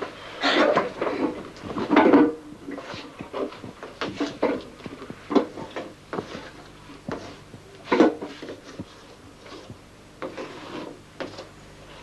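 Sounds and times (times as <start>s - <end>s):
rubbing on blackboard: 8.3s - 11.5s.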